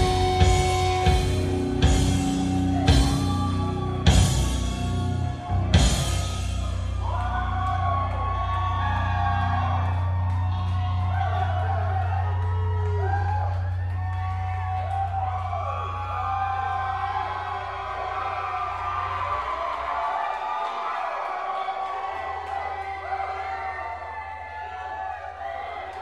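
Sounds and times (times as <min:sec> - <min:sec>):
audience whooping and shouting: 0:00.0 - 0:26.0.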